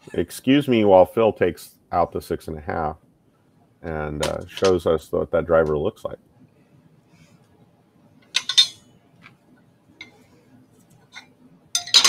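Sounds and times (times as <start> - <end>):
metal grilles clinking: 8.3 - 8.8, 11.1 - 12.0.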